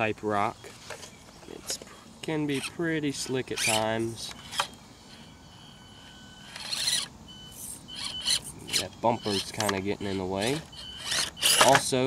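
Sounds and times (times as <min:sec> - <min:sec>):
tyres scraping on rock: 0:01.0 - 0:04.7, 0:08.0 - 0:12.0
small electric motor whining: 0:02.3 - 0:12.0.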